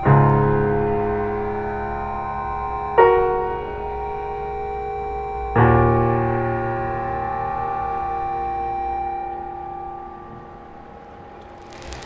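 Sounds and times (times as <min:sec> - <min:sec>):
electronic keyboard chord: 0:00.0 - 0:11.2.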